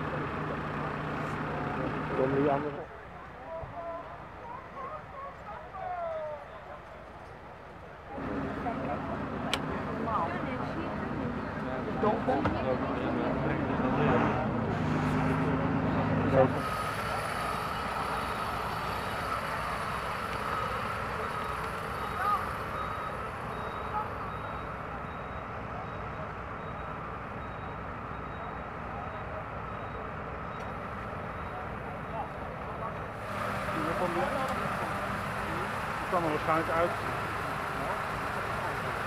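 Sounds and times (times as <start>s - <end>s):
deep engine hum: 0.0s - 2.7s, 12.7s - 39.0s
faint voices: 0.0s - 27.0s, 28.0s - 39.0s
emergency vehicles idling: 0.0s - 39.0s.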